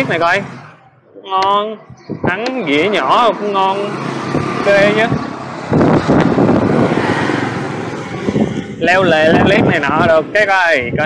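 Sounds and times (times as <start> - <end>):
road rush: 0.0 - 11.0
wind buffeting microphone: 1.5 - 11.0.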